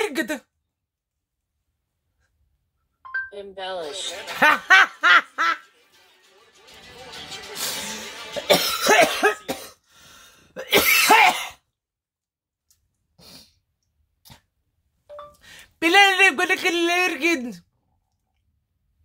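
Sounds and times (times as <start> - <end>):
woman laughing hard: 4.2 - 5.6.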